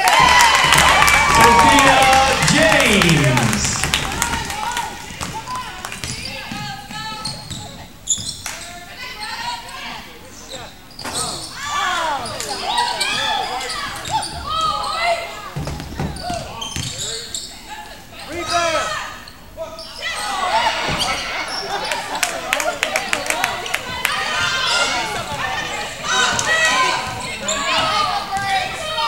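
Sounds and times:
players' voices: 0.4 - 8.0
sneakers squeaking: 5.1 - 8.8, 9.7 - 11.6, 12.2 - 22.0, 24.5 - 29.0.

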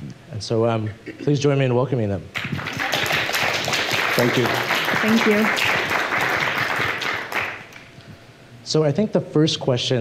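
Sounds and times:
audience applauding: 2.4 - 7.9.

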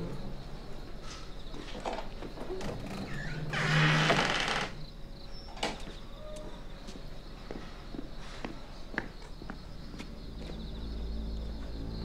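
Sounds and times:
insects chirping: 0.0 - 12.0
wooden door creaking and scraping: 1.6 - 4.8
light footsteps: 5.8 - 10.8.

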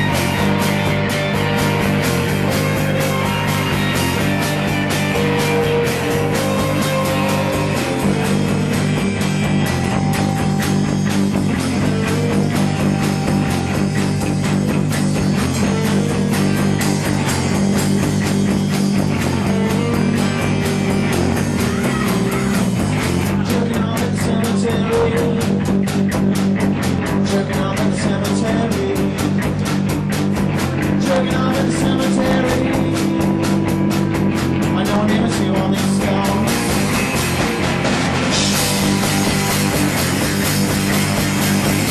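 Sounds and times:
drum kit steady beat: 0.0 - 41.9
electric guitars holding chords: 0.0 - 41.9
live rock band playing: 0.0 - 41.9.

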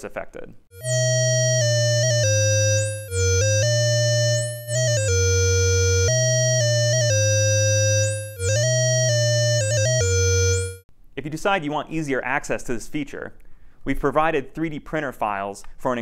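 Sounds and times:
analog synthesizer notes: 0.8 - 10.8
filter sweep on synth tone: 0.8 - 10.8
low synth tone: 0.8 - 10.8.

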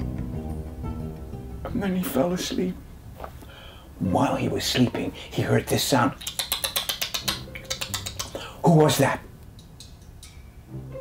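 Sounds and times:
person imitating teeth gnawing: 6.1 - 8.5.

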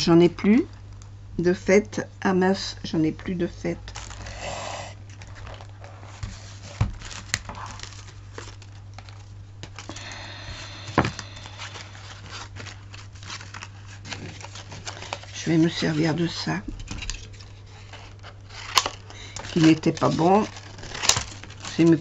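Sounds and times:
steady low hum: 0.0 - 22.0
paper and card rustling: 5.1 - 22.0.

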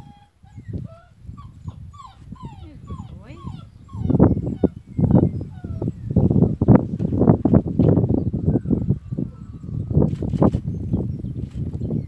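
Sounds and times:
puppy whining: 0.0 - 6.0.

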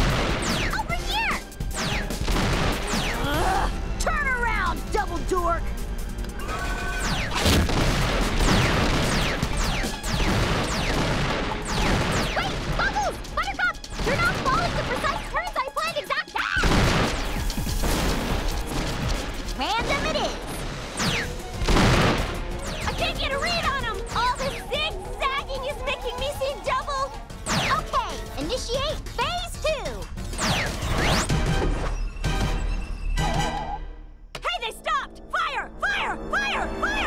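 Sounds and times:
action music score: 0.0 - 37.0
crashes and booms: 7.2 - 13.0, 16.6 - 22.5
wordless yells and grunts: 23.2 - 28.3.

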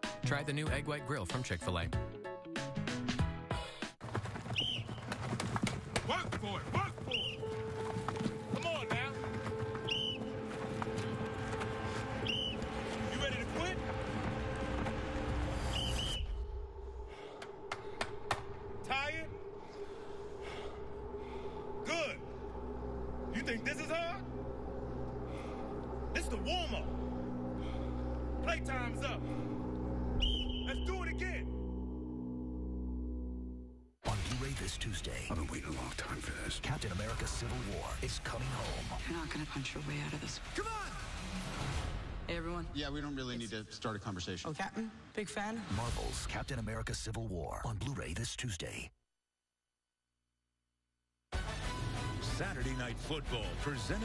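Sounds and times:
music: 0.0 - 4.0, 5.6 - 43.2, 51.3 - 54.0
short whistle blasts: 15.7 - 16.4, 30.2 - 30.9.

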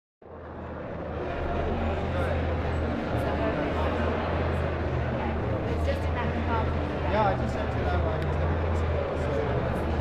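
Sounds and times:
background noise: 0.2 - 10.0.

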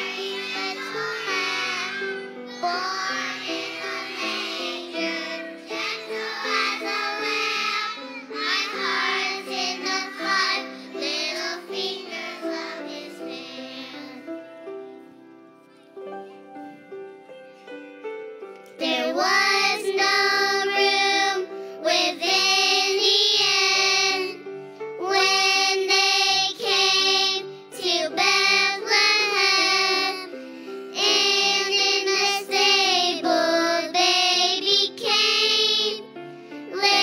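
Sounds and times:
children's choir singing in unison: 0.0 - 14.4, 18.8 - 37.0.

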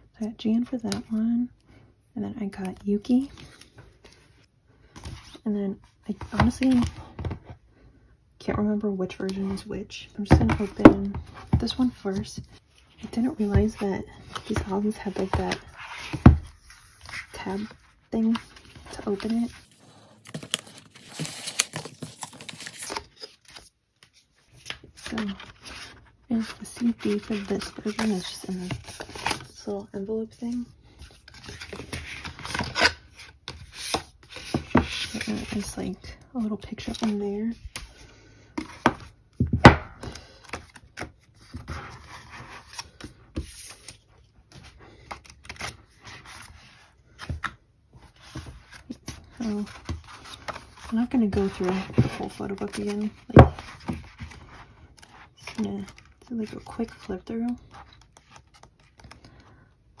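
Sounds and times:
pages flipping: 13.5 - 29.5, 40.0 - 59.5.

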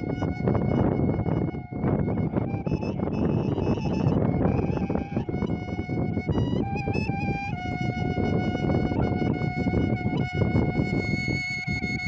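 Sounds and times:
wooden flute playing folk melody: 0.0 - 12.0.

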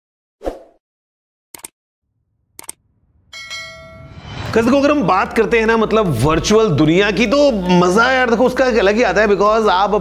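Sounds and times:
ringing bell chime: 3.3 - 4.4.

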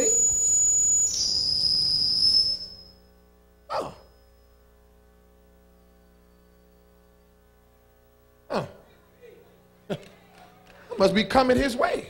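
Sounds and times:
microphone feedback whistle: 0.0 - 3.4, 4.0 - 4.8, 5.4 - 7.8.

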